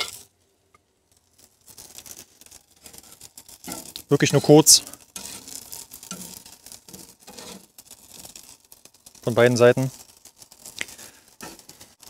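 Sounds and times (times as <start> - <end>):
grill crackling and sizzling: 0.0 - 12.0
spatula clicking on grill: 1.4 - 4.2, 4.8 - 12.0.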